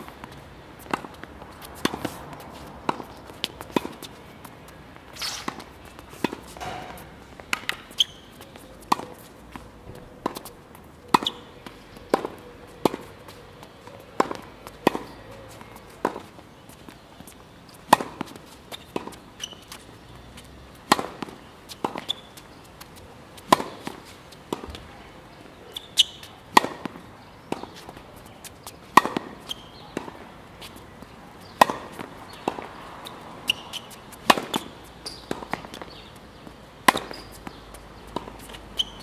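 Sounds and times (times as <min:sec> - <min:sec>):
racket hitting tennis ball: 0:00.0 - 0:04.2, 0:05.1 - 0:09.6, 0:10.2 - 0:10.5, 0:11.1 - 0:11.5, 0:12.1 - 0:16.4, 0:17.8 - 0:19.8, 0:20.4 - 0:24.8, 0:25.7 - 0:39.0
tennis ball bouncing on court: 0:00.0 - 0:04.2, 0:05.0 - 0:24.9, 0:25.7 - 0:39.0.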